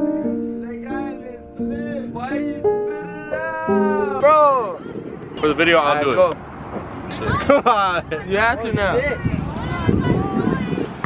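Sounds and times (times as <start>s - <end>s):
acoustic guitar chords: 0.0s - 4.6s.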